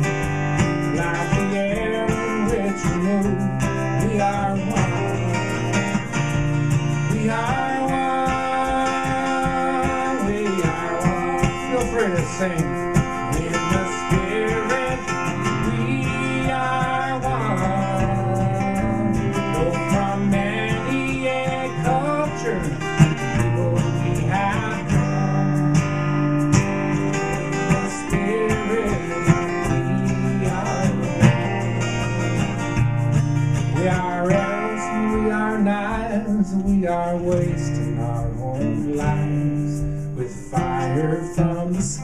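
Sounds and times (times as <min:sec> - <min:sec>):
acoustic guitar strummed: 0:00.0 - 0:42.0.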